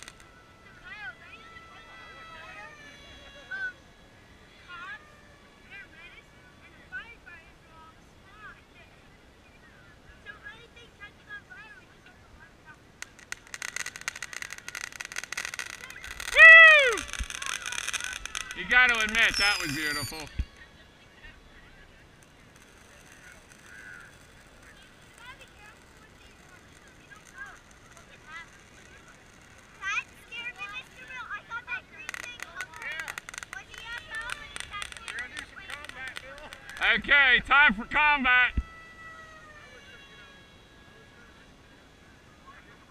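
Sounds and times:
firework crackling and popping: 0.0s - 0.7s, 12.9s - 39.0s
distant people talking: 0.0s - 42.9s
person cheering whoo: 16.2s - 17.3s.

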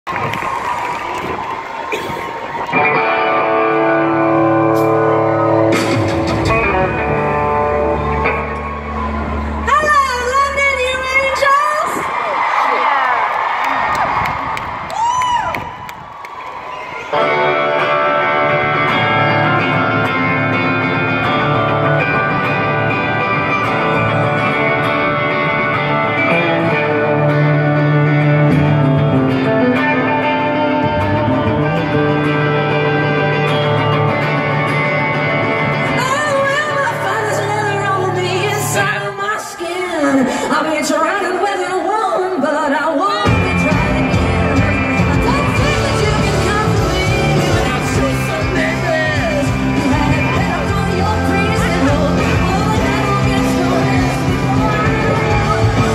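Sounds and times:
live rock band: 0.1s - 12.8s, 13.4s - 55.9s
held electric guitar chords: 2.6s - 11.2s, 17.1s - 39.1s, 43.2s - 55.9s.

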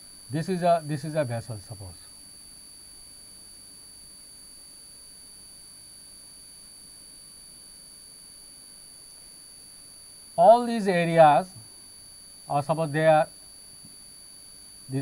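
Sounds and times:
low hiss: 0.0s - 2.2s, 9.7s - 13.9s
high-pitched electronic whine: 0.0s - 2.8s, 10.4s - 11.6s, 12.4s - 13.4s.

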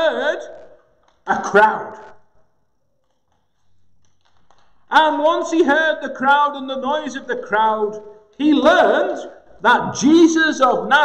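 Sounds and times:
man speaking: 0.0s - 2.3s, 4.9s - 11.0s.

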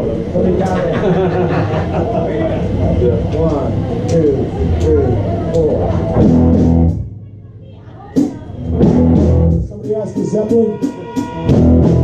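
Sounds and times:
live band playing: 5.8s - 7.2s, 8.2s - 12.0s
loud band hit: 6.1s - 7.0s, 8.2s - 12.0s.

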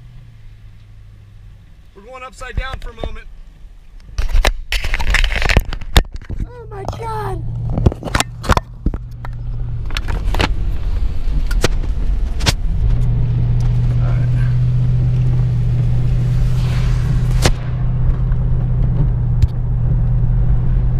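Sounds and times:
car engine and tyres on wet road: 0.0s - 20.9s.

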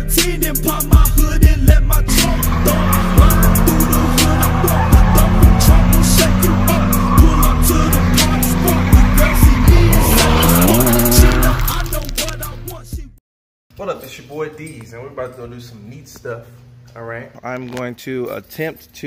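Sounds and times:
hip-hop beat: 0.0s - 13.2s
car engine revving: 1.8s - 12.7s
tyres squealing on pavement: 2.2s - 12.3s.

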